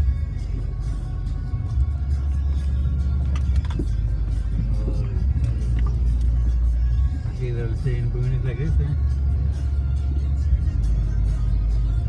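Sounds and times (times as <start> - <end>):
music: 0.0 - 12.0
pickup truck engine drone: 0.0 - 12.0.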